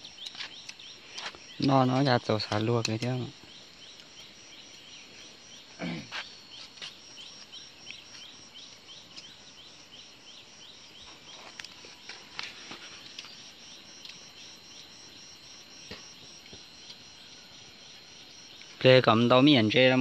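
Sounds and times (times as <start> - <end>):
insects high pulsing trill: 0.0 - 20.0.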